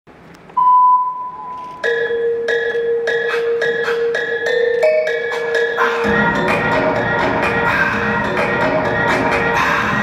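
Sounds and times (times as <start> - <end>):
electronic beep: 0.6 - 3.5
music with mallet-like notes: 1.4 - 10.0.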